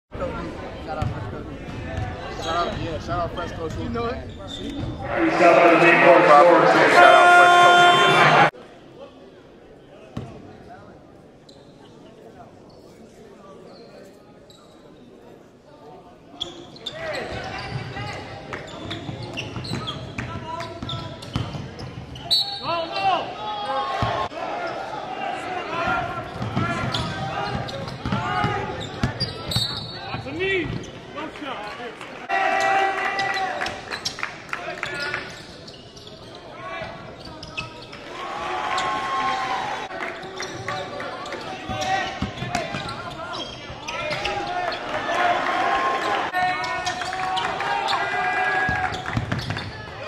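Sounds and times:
sneakers squeaking: 0:01.0 - 0:05.4, 0:11.5 - 0:12.0, 0:13.6 - 0:15.1, 0:16.3 - 0:23.2, 0:25.7 - 0:31.9, 0:33.2 - 0:39.2, 0:40.0 - 0:45.0, 0:48.6 - 0:50.0
people calling out and shouting: 0:04.9 - 0:08.5.

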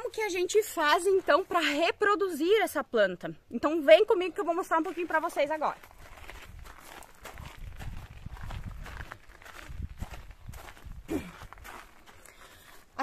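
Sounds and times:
footsteps on gravel: 0:00.0 - 0:01.9, 0:04.7 - 0:13.0.

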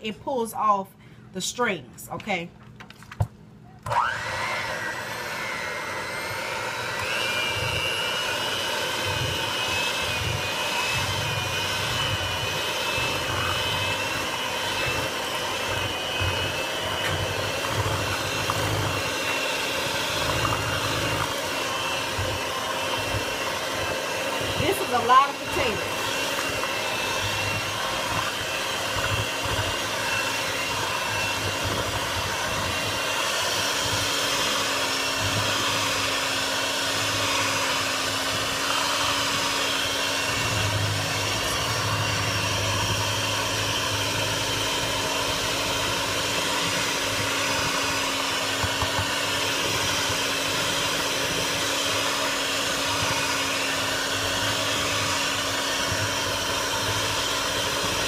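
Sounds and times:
electric hand mixer running: 0:03.8 - 0:58.0.

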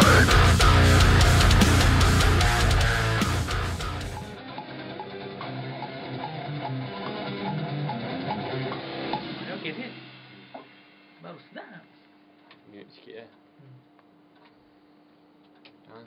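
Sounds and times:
electric guitar riffs: 0:00.0 - 0:10.2
heavy metal music: 0:00.0 - 0:10.9.

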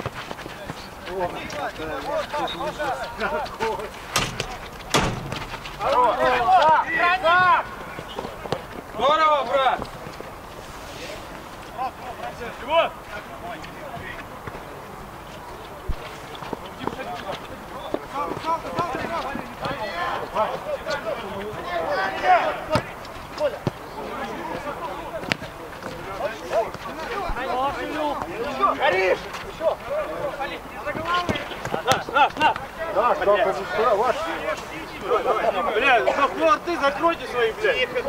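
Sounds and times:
footballers shouting: 0:00.4 - 0:09.8, 0:16.9 - 0:38.0.

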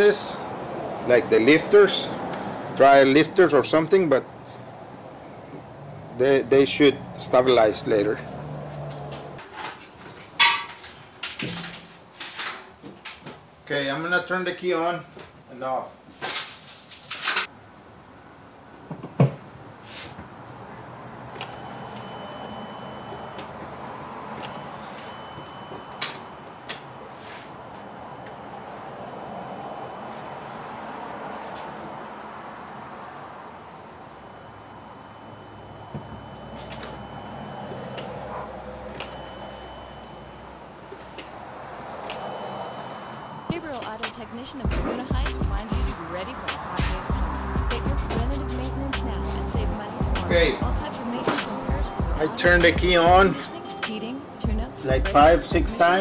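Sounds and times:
short electronic beeps: 0:34.2 - 0:38.1, 0:39.0 - 0:40.5.

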